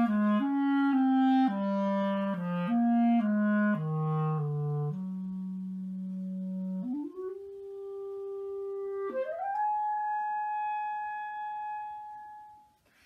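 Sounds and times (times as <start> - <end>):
solo clarinet: 0.0 - 13.0.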